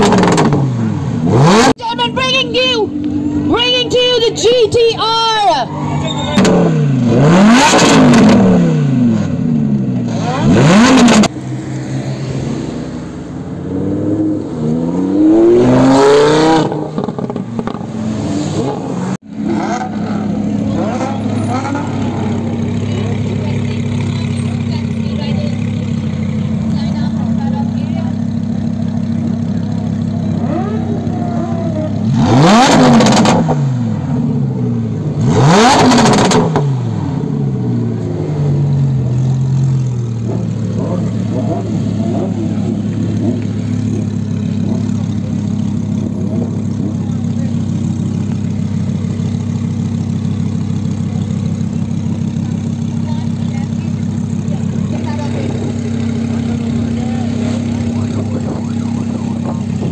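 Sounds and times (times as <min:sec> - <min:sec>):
car engine idling: 0:00.0 - 0:59.9
car engine revving: 0:00.0 - 0:59.9.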